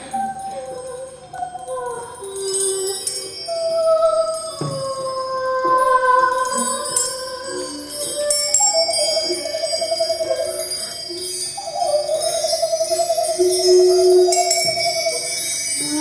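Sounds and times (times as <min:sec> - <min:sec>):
bell-like chiming: 0:00.0 - 0:16.0
woman singing long notes: 0:00.0 - 0:16.0.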